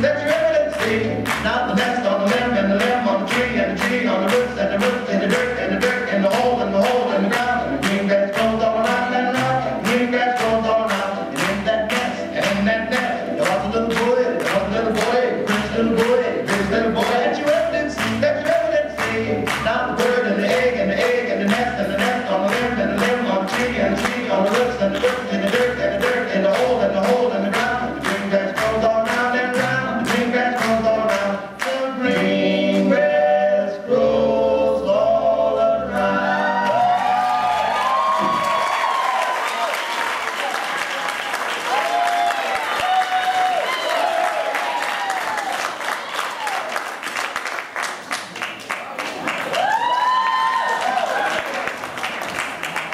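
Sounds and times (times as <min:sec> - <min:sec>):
swing music with singing: 0:00.0 - 0:40.8
audience applause and cheering: 0:36.3 - 0:52.9.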